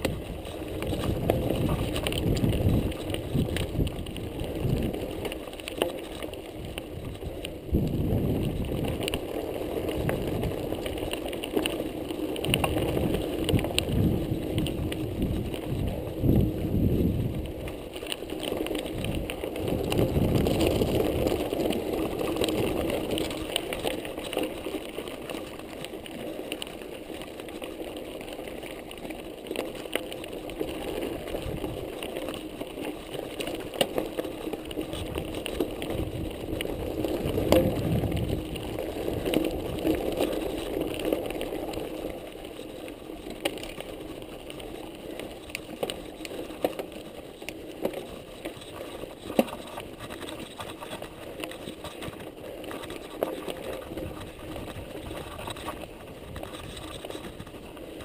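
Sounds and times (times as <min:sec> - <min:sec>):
bike rattling: 0:00.0 - 0:58.0
bike tyres on dirt trail: 0:00.0 - 0:58.0
clicks and knocks from rocks: 0:00.0 - 0:58.0.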